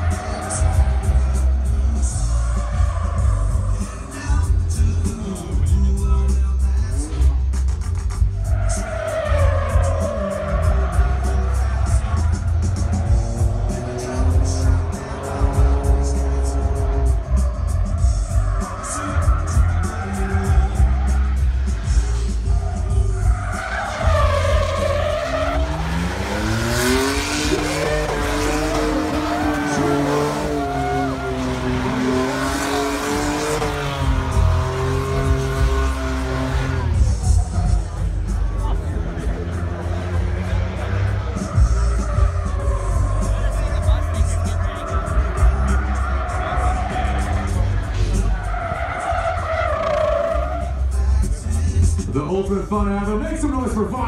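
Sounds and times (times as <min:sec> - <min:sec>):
tyres squealing: 0:00.0 - 0:04.4, 0:08.3 - 0:51.3
car engine revving: 0:00.0 - 0:54.0
music with pulsing bass beat: 0:00.0 - 0:54.0.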